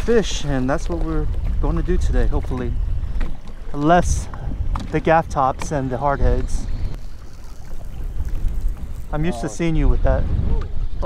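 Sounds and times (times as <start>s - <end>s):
faint water wash: 0.0s - 10.7s
wind buffeting microphone: 0.0s - 11.0s.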